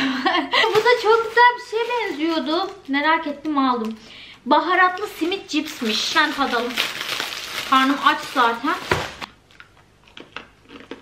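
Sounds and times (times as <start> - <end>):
chip bag crackling: 0.6 - 3.9, 4.8 - 9.3
chips crunching: 4.9 - 11.0.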